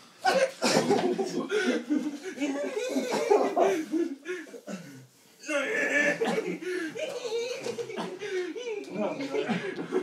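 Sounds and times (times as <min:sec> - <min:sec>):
coughing: 0:00.2 - 0:01.4, 0:02.8 - 0:10.0
hard laughter: 0:00.2 - 0:04.6, 0:05.8 - 0:10.0.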